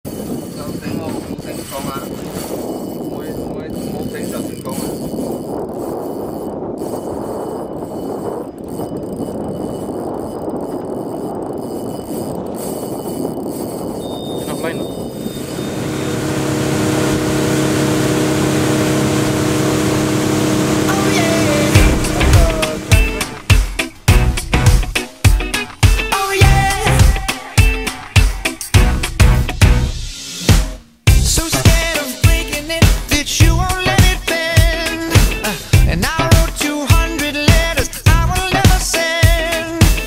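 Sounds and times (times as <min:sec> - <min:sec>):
wind: 0:00.1 - 0:29.2
outboard motor droning: 0:02.2 - 0:24.9
sea rushing: 0:14.4 - 0:28.7.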